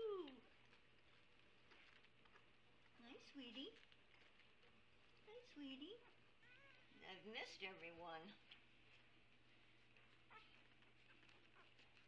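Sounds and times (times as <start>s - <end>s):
low steady hum: 0.0s - 12.0s
puppies squeaking: 9.9s - 12.0s.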